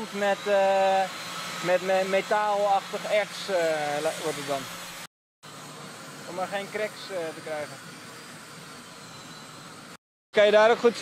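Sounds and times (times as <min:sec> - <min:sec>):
gas burner flame hissing: 0:00.0 - 0:10.0.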